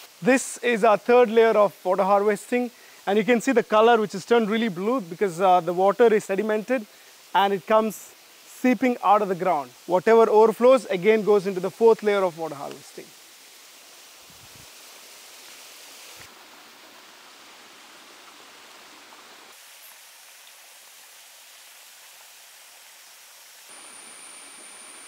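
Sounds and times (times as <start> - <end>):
rainwater trickling downhill: 0.1 - 23.8
thin high steady tone: 23.7 - 25.0.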